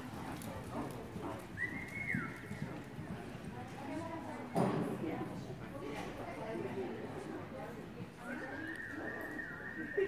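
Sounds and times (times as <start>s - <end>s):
horse hoofbeats on dirt: 0.0s - 4.3s.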